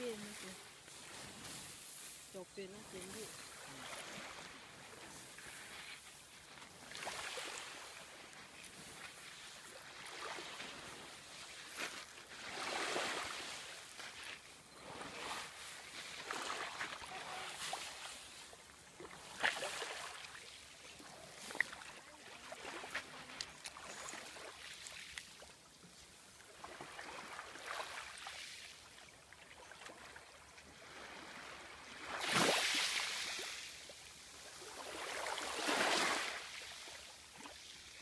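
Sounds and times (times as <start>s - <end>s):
small waves washing on beach: 0.0s - 38.0s.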